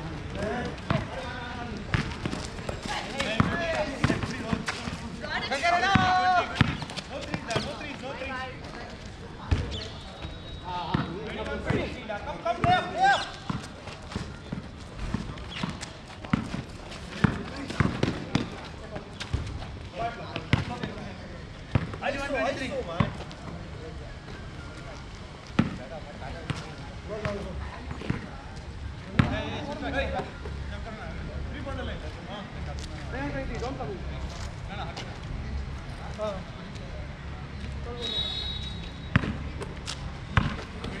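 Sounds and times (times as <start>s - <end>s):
basketball bouncing on hard court: 1.9s - 4.6s, 5.9s - 7.7s, 39.1s - 39.4s, 40.3s - 40.7s.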